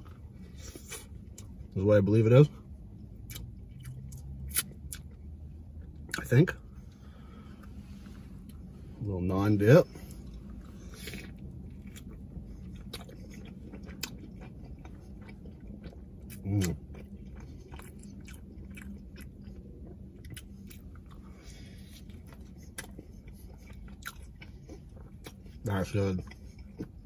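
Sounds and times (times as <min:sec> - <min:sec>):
faint low hum: 0:00.0 - 0:27.0
mouth chewing food: 0:03.0 - 0:07.7, 0:09.8 - 0:27.0.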